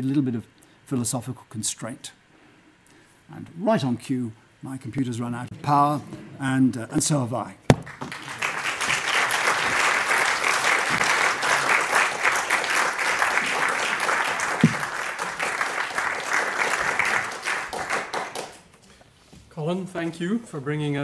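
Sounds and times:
audience applauding: 0:07.7 - 0:18.7.

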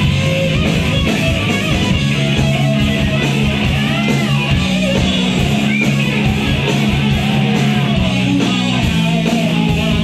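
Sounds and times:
electric guitar: 0:00.0 - 0:10.0
rock band playing live: 0:00.0 - 0:10.0.

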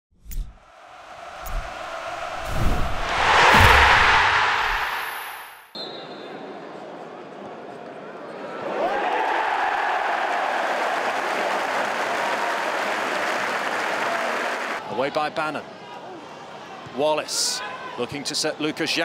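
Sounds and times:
whoosh with low booms: 0:00.4 - 0:05.7
stadium crowd roaring: 0:00.6 - 0:05.5, 0:08.4 - 0:14.8.

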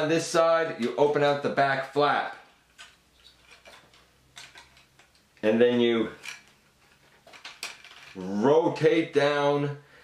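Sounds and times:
plastic toy parts clicking: 0:02.7 - 0:05.4, 0:06.2 - 0:08.2.

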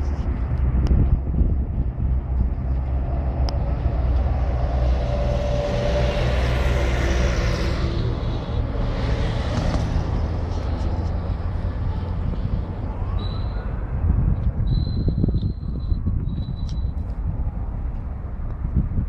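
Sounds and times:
vehicle passing by: 0:00.0 - 0:14.3
road traffic rumble: 0:00.0 - 0:19.0.

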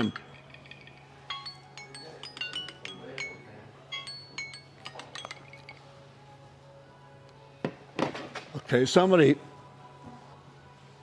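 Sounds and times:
glass and crockery clinking: 0:00.0 - 0:05.9.

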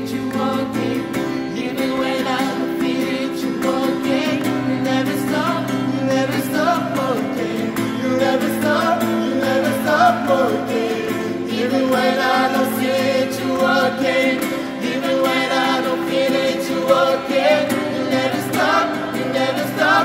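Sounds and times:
group singing in harmony: 0:00.0 - 0:20.0
strummed acoustic guitar: 0:00.0 - 0:20.0.

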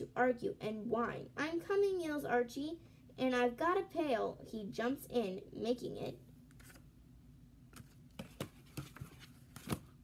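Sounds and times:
book pages flipping: 0:06.5 - 0:06.9, 0:07.7 - 0:10.0
book rustles and taps: 0:07.7 - 0:10.0.

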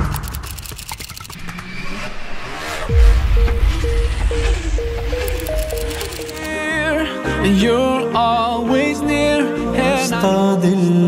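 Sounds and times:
rising revving whoosh: 0:01.2 - 0:06.5
deep downward-sweeping boom: 0:02.8 - 0:05.3.

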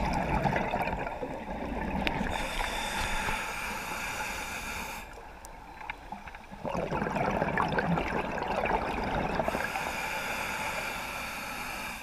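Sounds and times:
bubbling rush of water: 0:00.0 - 0:02.4, 0:06.1 - 0:09.7
faint underwater clicks: 0:00.0 - 0:06.6.

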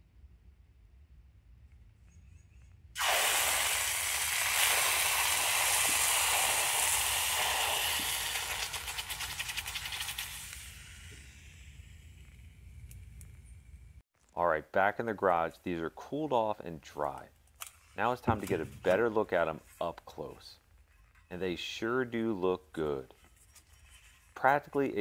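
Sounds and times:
loud steam hiss: 0:03.0 - 0:12.2
boiling water crackling: 0:03.0 - 0:13.6.

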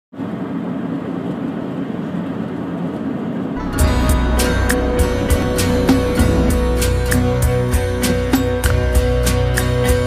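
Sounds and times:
road and engine noise in car: 0:00.2 - 0:04.4
music with bass and drum beat: 0:03.6 - 0:10.0.

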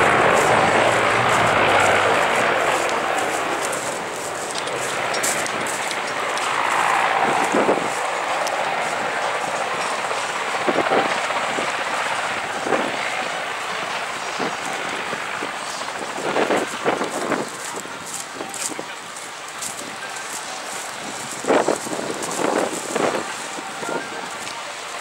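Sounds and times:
distant farm machinery: 0:00.0 - 0:25.0.

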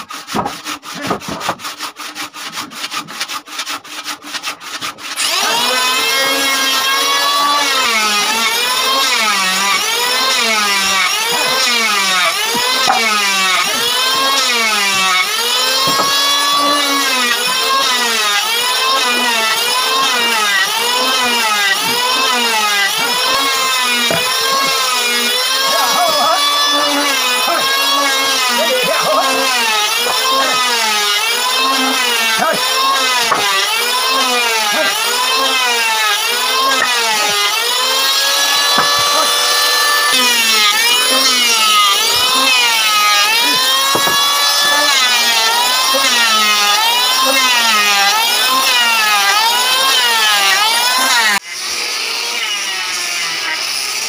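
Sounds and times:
handsaw cutting wood: 0:00.0 - 0:54.0.

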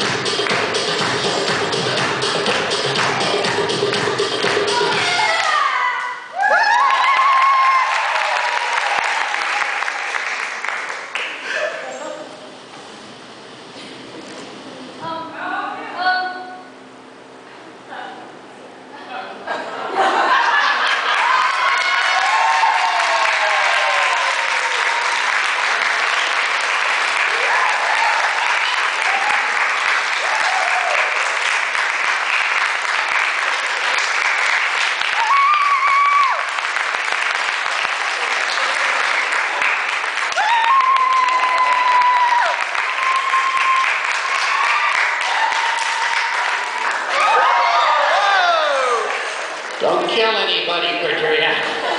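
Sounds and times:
crowd cheering and whooping: 0:04.6 - 0:10.4, 0:19.9 - 0:49.8
audience applauding: 0:06.4 - 0:11.7, 0:20.3 - 0:50.2.

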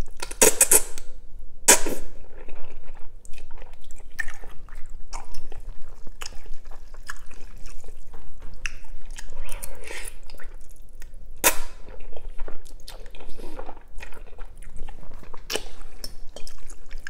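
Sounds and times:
wet chewing and lip smacking: 0:02.4 - 0:17.0.

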